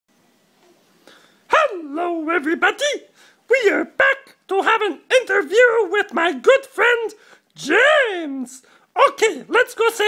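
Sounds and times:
high puppet voice greeting: 1.5 - 10.0.

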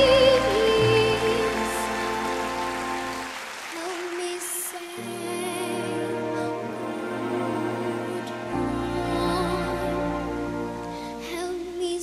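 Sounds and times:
girl singing soprano: 0.0 - 2.0, 3.8 - 12.0
orchestral sustained chord: 5.0 - 11.8.

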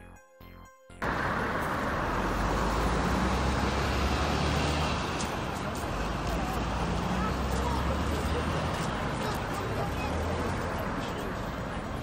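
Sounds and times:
road traffic rumble: 1.0 - 12.0
traffic hiss: 1.0 - 12.0.

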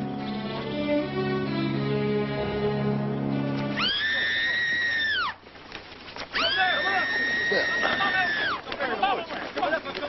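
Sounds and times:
sad orchestral string music: 0.0 - 3.9.

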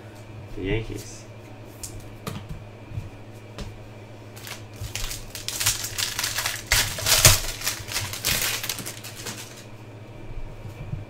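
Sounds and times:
wrapper crinkling and rustling: 4.4 - 9.7.

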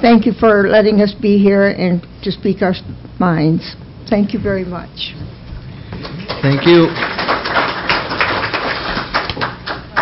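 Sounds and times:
audience clapping: 6.0 - 10.0.

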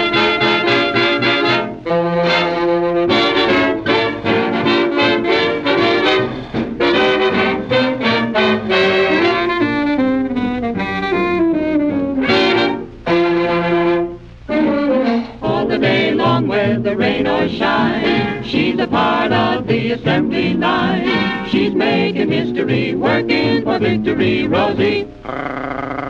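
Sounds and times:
swing music with brass: 0.0 - 25.1.

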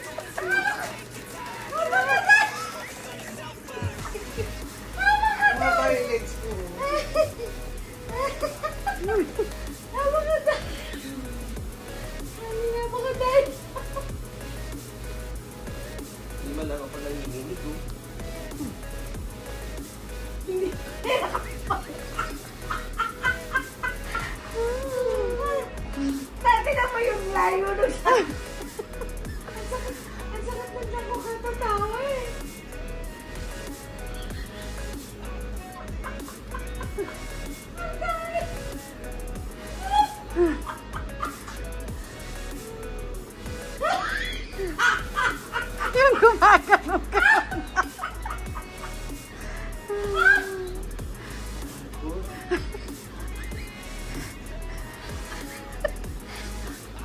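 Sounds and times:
woman laughing hard: 0.0 - 6.0, 6.6 - 11.5, 20.4 - 31.2, 35.7 - 39.0, 39.6 - 41.8, 43.7 - 50.9, 52.3 - 53.5, 55.0 - 56.6.

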